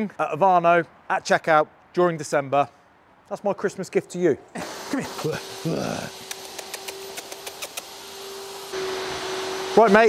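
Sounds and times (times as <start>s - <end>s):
loud hiss: 4.6s - 10.0s
dog claws clicking on concrete: 6.2s - 7.9s.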